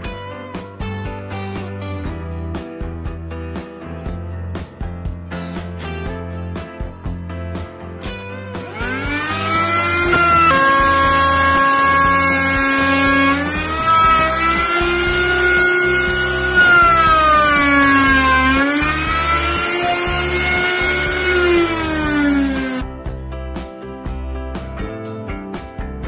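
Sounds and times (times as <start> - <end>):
electric router whine: 8.4 - 22.8.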